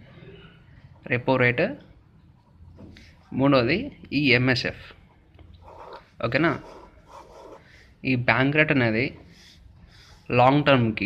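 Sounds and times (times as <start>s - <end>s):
pen scratching on paper: 5.6s - 7.8s
person speaking: 5.6s - 11.0s.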